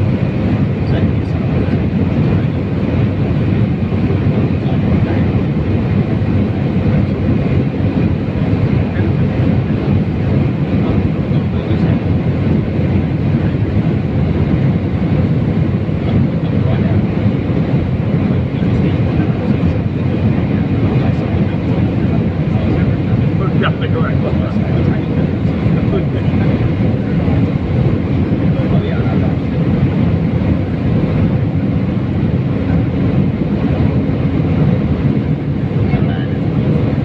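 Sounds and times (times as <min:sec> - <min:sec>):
jet cabin engine and airflow noise: 0:00.0 - 0:37.0.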